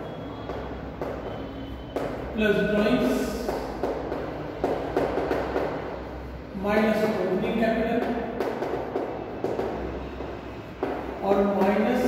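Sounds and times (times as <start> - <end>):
chalk tapping on board: 0.3 - 2.3, 3.0 - 6.0, 6.9 - 12.0.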